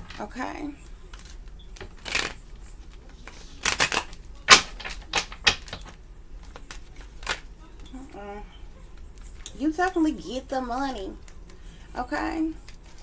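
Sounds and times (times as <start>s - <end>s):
cards being shuffled: 0.8s - 7.9s, 12.6s - 13.0s.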